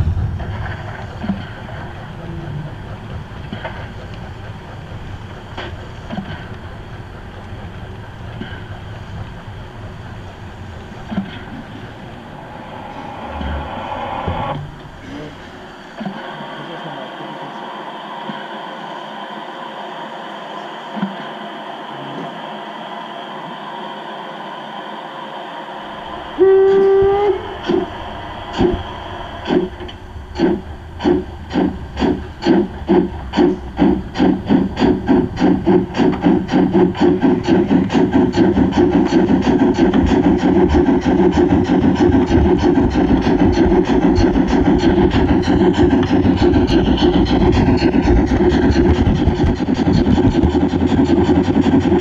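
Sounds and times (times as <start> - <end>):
steam chuffs: 0.0 - 52.0
model locomotive whistle: 26.3 - 27.9.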